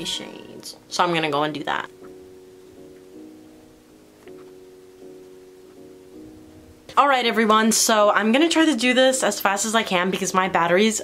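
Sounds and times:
soft held chords music: 0.0 - 11.0.

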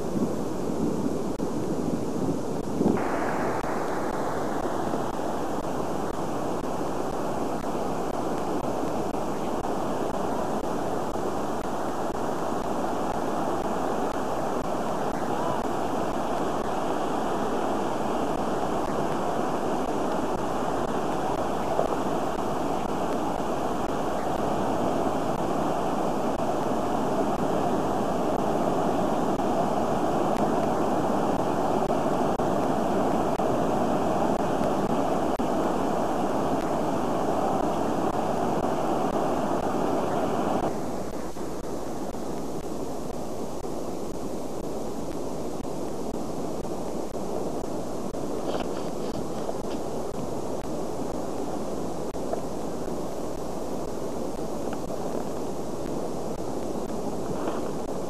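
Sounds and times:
dull steady rush: 0.0 - 58.0
surf breaking on rocks: 0.0 - 58.0.

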